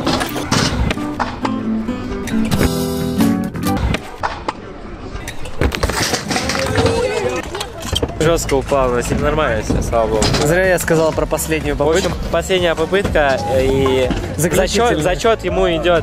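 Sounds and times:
background music: 0:00.0 - 0:04.1, 0:08.2 - 0:16.0
voices: 0:04.0 - 0:16.0
scooter wheels rolling on concrete: 0:05.3 - 0:11.1
scooter clattering on concrete: 0:05.6 - 0:11.0.

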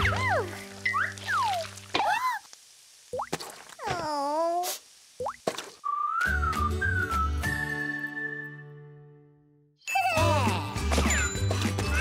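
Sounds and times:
whistled melody: 0:05.8 - 0:09.4
cartoon character vocal cries: 0:09.9 - 0:10.8.

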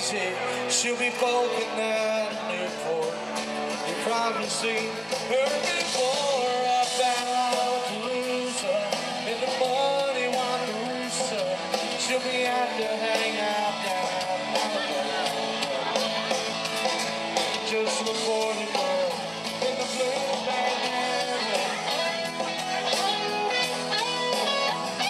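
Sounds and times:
live band playing rock song: 0:00.0 - 0:25.0.

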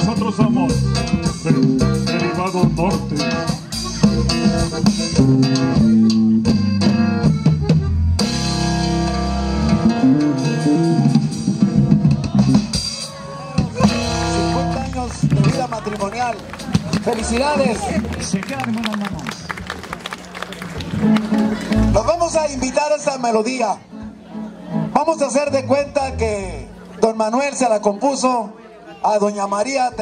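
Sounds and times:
live rock band music: 0:00.0 - 0:27.1
voices: 0:12.1 - 0:30.0.

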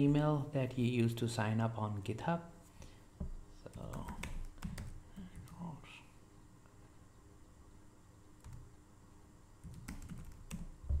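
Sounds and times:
computer keyboard keystrokes: 0:03.7 - 0:05.7, 0:08.4 - 0:08.6, 0:09.6 - 0:10.7.

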